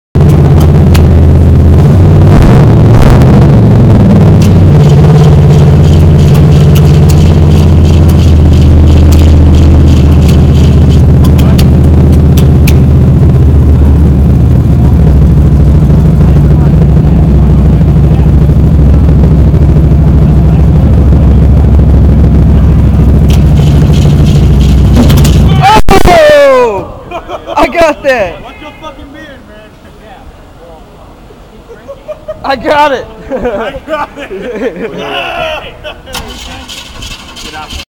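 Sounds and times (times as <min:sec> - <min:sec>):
loud unmuffled engine running: 0:00.2 - 0:26.0, 0:36.1 - 0:37.9
engine backfire pops: 0:00.2 - 0:26.1, 0:36.1 - 0:37.8.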